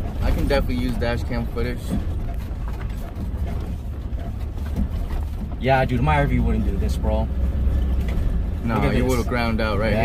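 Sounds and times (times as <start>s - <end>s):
engine rumble: 0.0s - 10.0s.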